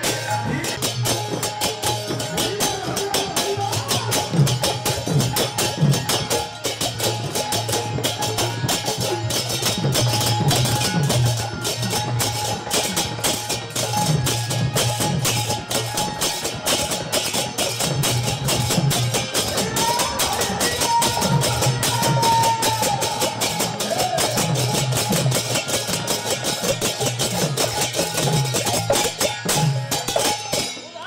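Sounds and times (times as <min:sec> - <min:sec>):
barrel drum beating dance rhythm: 0:00.0 - 0:30.8
small brass hand cymbals clashing: 0:00.0 - 0:31.0.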